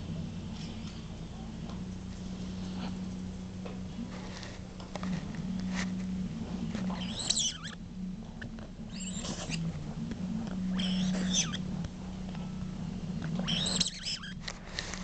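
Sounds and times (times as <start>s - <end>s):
steady low hum: 0.0s - 15.0s
dog whining: 6.8s - 7.8s, 8.4s - 9.8s, 10.4s - 11.8s, 13.4s - 14.4s.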